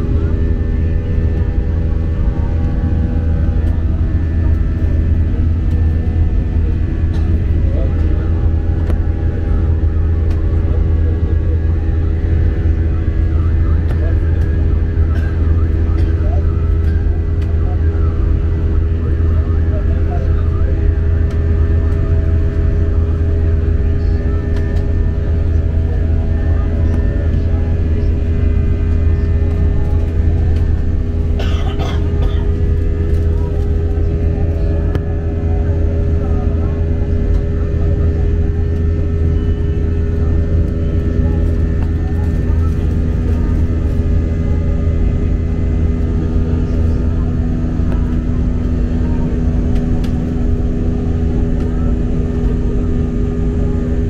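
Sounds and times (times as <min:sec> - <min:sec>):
jet engine cabin drone: 0:00.0 - 0:54.0.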